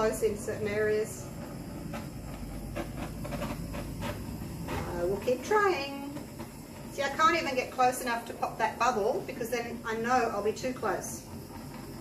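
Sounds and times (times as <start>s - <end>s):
torch flame hissing: 0.0s - 12.0s.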